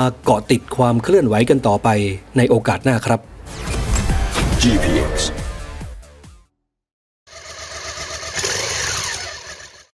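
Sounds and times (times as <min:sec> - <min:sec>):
engine revving: 0:07.3 - 0:09.9.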